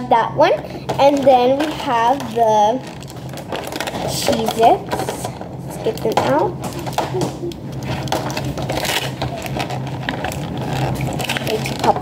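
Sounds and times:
steady low hum: 0.0 - 12.0
plastic packaging crinkling and clicking: 0.9 - 12.0.

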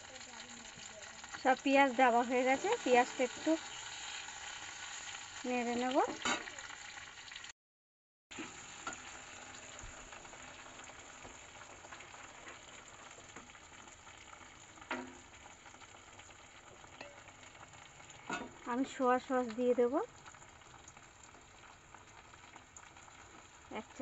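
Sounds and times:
onions sizzling in hot oil: 0.0 - 7.5, 8.3 - 24.0.

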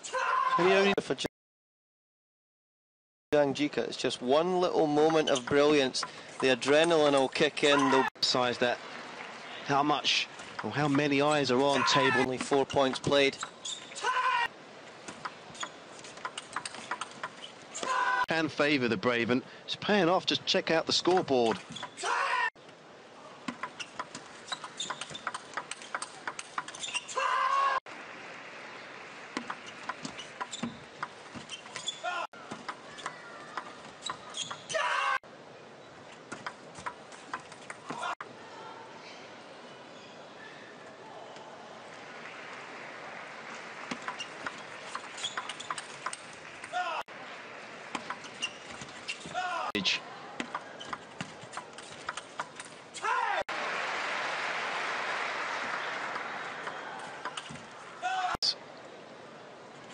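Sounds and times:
shoes squeaking on floor: 13.3 - 14.1, 15.5 - 15.8, 16.6 - 17.9, 21.5 - 22.0, 23.7 - 27.3, 29.5 - 32.3, 32.9 - 34.8, 43.9 - 46.2, 48.0 - 49.5, 50.6 - 53.1
person shouting: 22.0 - 22.5, 34.7 - 35.2, 53.0 - 53.4
crowd background: 41.1 - 58.6
crowd applause: 41.9 - 44.9, 53.5 - 57.2.

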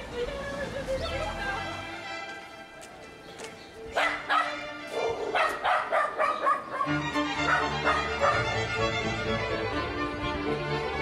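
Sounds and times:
dog barking: 4.0 - 8.6
background music with sustained notes: 6.4 - 11.0.

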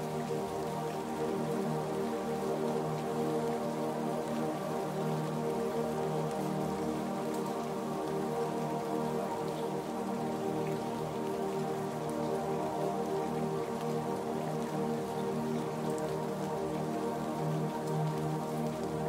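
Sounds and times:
ambient music with soft chords: 0.0 - 19.0
rain pattering: 0.0 - 19.0.

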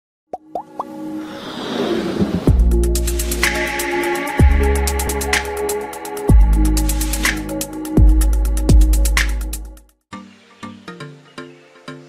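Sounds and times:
whoosh: 1.2 - 3.6.

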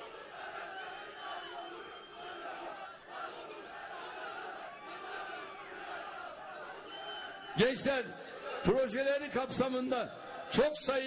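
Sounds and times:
crowd shouting and cheering: 0.0 - 11.0
high whistles: 0.7 - 2.4, 6.8 - 7.6.

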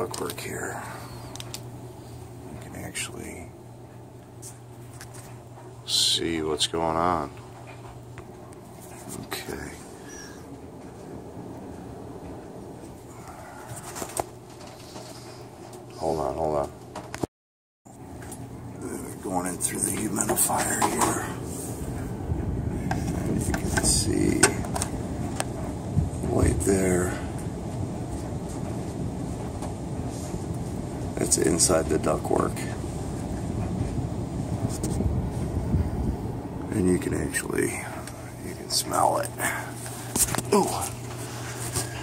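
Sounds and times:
air rushing through ductwork: 0.0 - 16.4, 18.4 - 42.0
low hum: 0.0 - 17.1, 17.9 - 42.0
man speaking: 2.5 - 3.5, 9.1 - 9.9, 18.8 - 21.4, 36.7 - 39.8, 40.4 - 41.0.

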